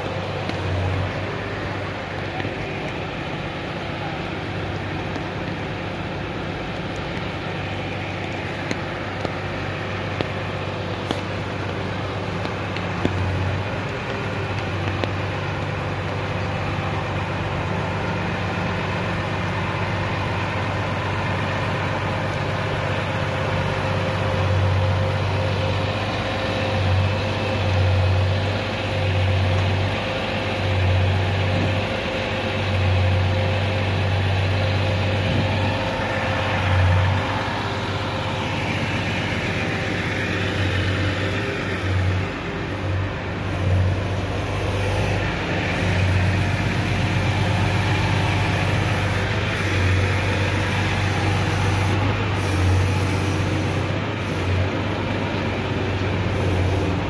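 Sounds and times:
rain falling: 0.0s - 27.0s
diesel engine idling: 0.0s - 57.0s.

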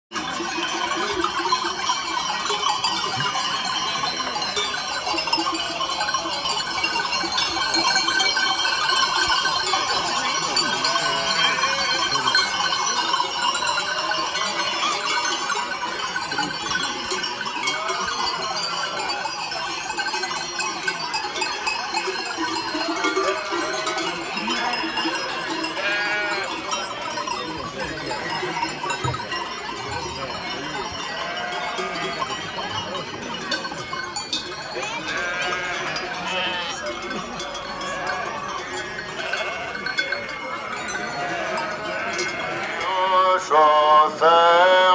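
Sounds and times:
sheep bells clanging: 0.1s - 44.9s
sheep bleating: 25.7s - 26.5s, 35.0s - 36.8s, 41.2s - 42.9s.

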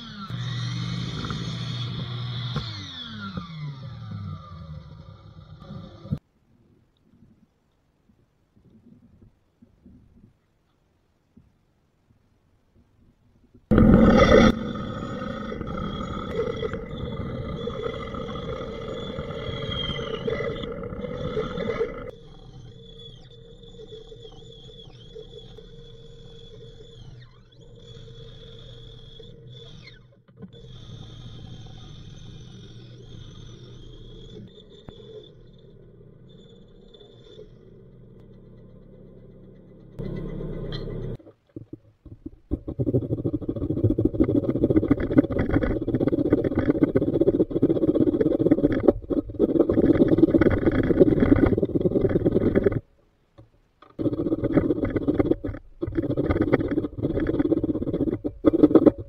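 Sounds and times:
bandsaw cutting wood: 0.0s - 6.2s.

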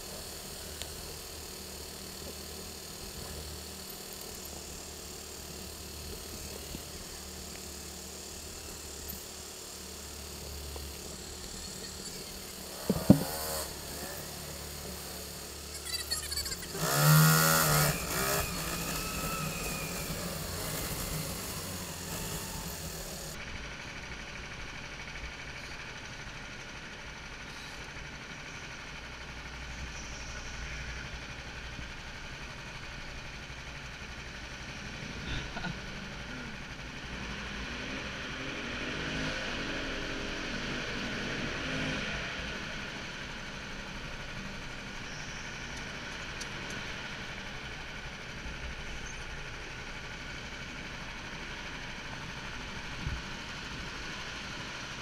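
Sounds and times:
go-kart engines running: 0.0s - 55.0s.

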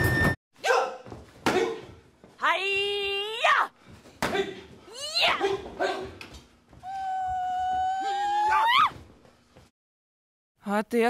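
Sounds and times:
animal yowling: 6.8s - 8.9s.

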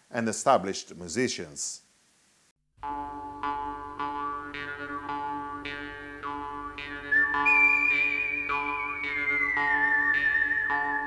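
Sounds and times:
high held lead melody: 2.8s - 11.0s
plucked chord accompaniment: 2.8s - 11.0s.

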